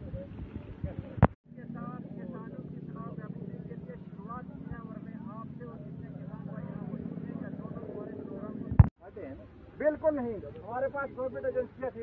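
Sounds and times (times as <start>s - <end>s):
distant people chattering: 0.0s - 12.0s.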